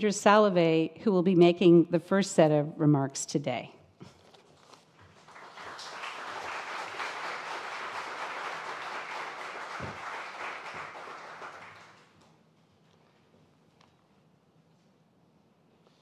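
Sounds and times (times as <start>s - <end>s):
audience applauding: 5.0s - 12.2s.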